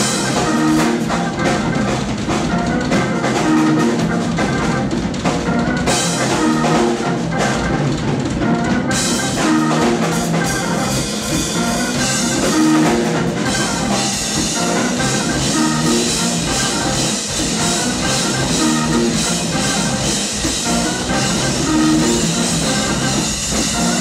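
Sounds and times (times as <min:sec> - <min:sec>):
drum kit: 0:00.0 - 0:24.0
electric bass: 0:00.0 - 0:24.0
keyboard playing: 0:00.0 - 0:24.0.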